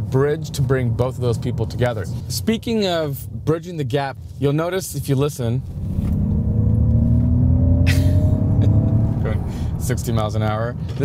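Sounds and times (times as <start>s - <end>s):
loud low rumble: 5.6s - 10.1s
synthetic engine note rising: 5.7s - 9.4s.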